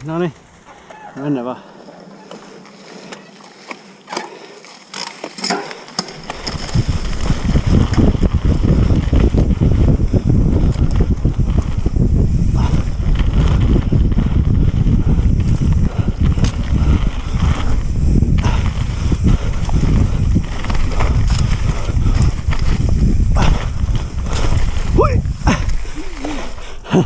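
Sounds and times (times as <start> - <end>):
bike clicks and rattles: 0.0 - 27.0
bike tyres rumbling over dirt: 0.0 - 27.0
wind buffeting microphone: 5.9 - 27.0.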